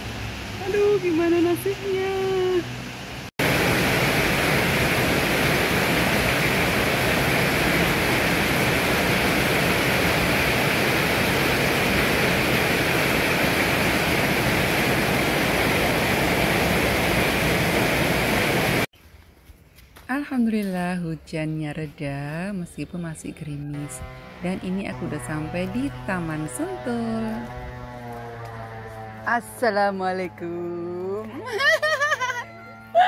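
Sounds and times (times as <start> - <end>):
heavy rain on street: 1.9 - 18.9.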